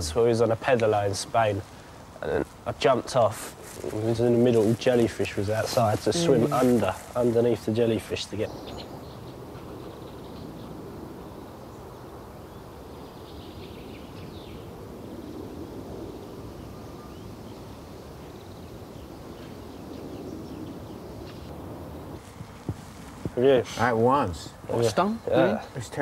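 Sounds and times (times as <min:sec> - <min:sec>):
outdoor background noise: 0:00.0 - 0:26.0.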